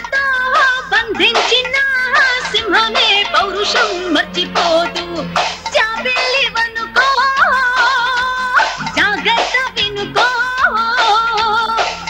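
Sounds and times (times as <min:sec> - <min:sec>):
instrumental backing with percussion: 0:00.0 - 0:12.0
person singing a melody: 0:00.0 - 0:12.0.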